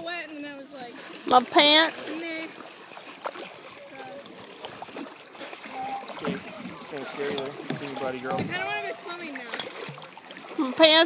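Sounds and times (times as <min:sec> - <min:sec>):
water sloshing around legs: 0:00.0 - 0:11.0
faint voices: 0:05.6 - 0:09.6.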